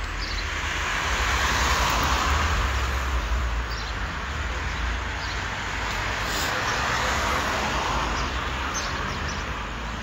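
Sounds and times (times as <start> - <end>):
steady low traffic rumble: 0.0 - 10.0
car passing by: 0.5 - 3.5.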